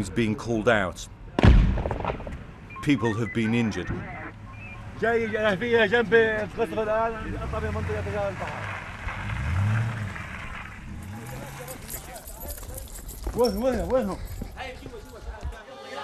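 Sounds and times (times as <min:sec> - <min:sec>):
road noise: 0:02.1 - 0:15.6
vehicle engine revving: 0:07.0 - 0:12.3.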